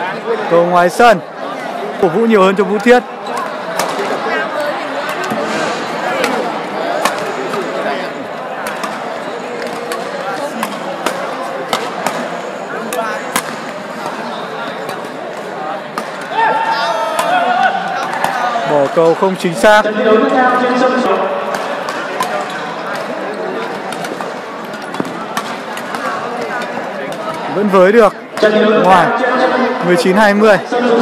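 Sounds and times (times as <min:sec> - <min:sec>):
background chatter in a hall: 0:00.0 - 0:31.0.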